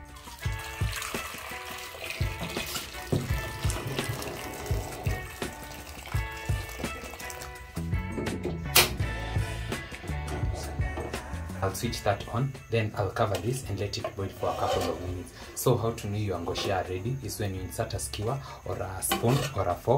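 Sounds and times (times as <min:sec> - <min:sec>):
water pouring into metal pot: 0:00.0 - 0:08.2
background music: 0:00.0 - 0:19.9.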